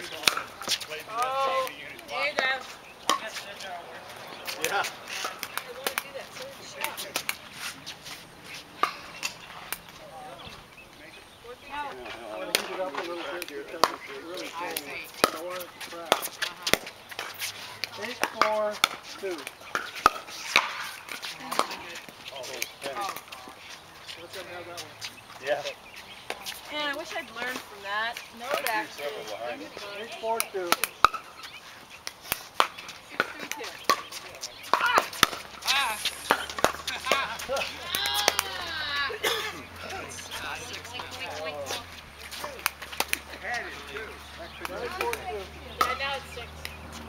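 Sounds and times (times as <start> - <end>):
paddles striking pickleball: 0.0 - 3.8, 4.4 - 7.8, 12.2 - 24.9, 26.2 - 39.2, 39.8 - 47.0
voices talking: 0.0 - 47.0.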